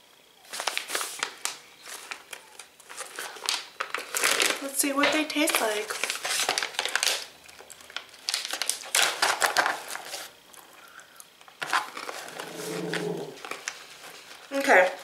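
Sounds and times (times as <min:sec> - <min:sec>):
plastic snack bag crinkling: 0:00.5 - 0:15.0.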